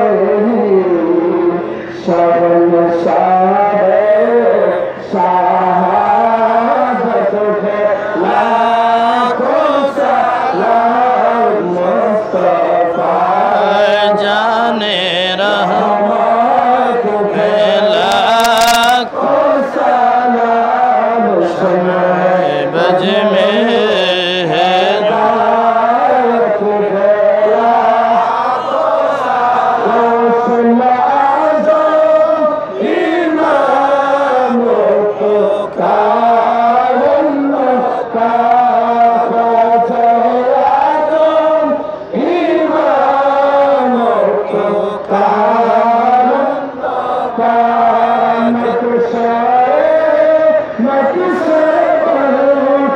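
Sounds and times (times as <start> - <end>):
man chanting over loudspeaker: 0.0 - 52.9
men's voices holding low note: 0.0 - 52.9.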